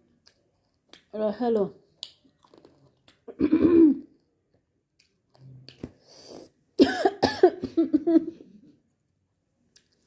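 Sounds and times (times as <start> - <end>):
person coughing: 3.3 - 4.1, 6.8 - 8.3.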